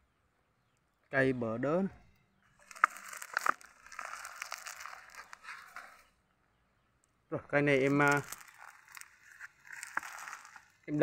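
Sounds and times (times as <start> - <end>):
crinkling rustling handling noise: 2.6 - 6.1, 7.8 - 11.0.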